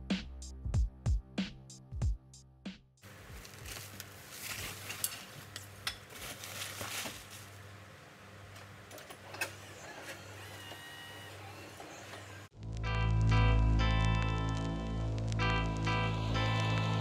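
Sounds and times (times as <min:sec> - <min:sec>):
plastic wrap crackling and crinkling: 0:03.1 - 0:07.8.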